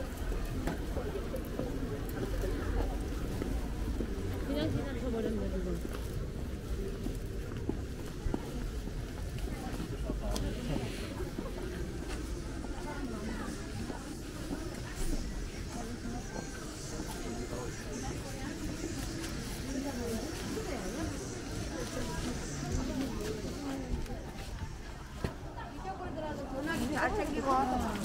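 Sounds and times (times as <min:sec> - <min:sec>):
passers-by talking indistinctly: 0:00.0 - 0:28.0.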